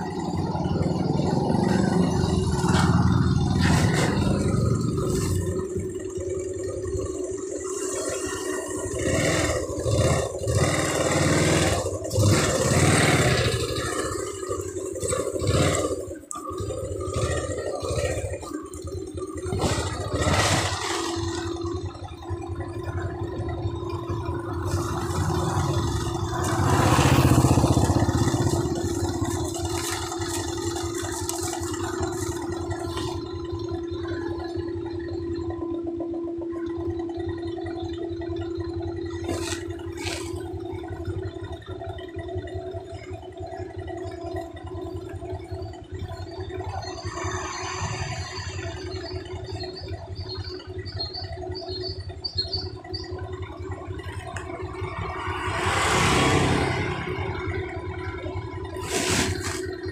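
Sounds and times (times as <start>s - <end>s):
motorcycle engine revving: 0.0s - 59.9s
rush of noise: 54.5s - 59.9s.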